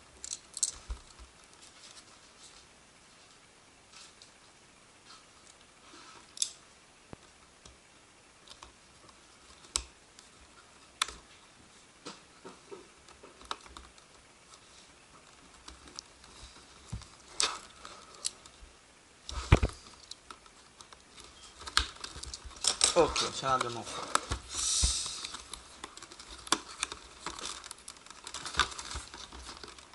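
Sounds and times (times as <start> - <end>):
hands opening cardboard box: 20.9 - 29.9.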